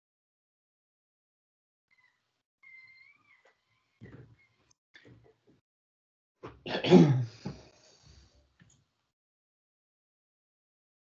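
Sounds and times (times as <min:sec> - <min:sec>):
faint high-pitched call: 0:01.9 - 0:04.5.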